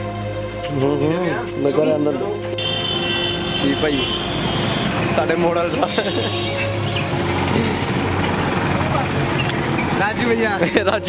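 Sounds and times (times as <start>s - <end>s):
passing vehicles rushing hum: 2.5s - 11.0s.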